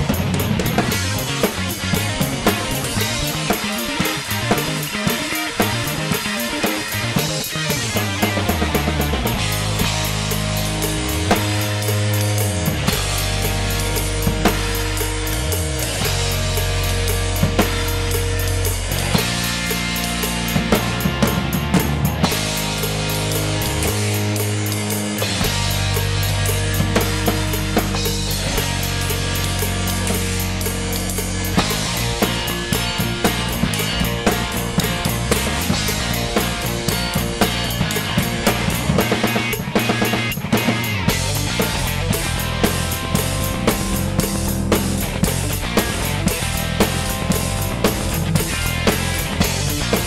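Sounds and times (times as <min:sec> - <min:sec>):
held bass notes and chords: 0:00.0 - 0:50.0
rock drum kit played hard: 0:00.0 - 0:50.0.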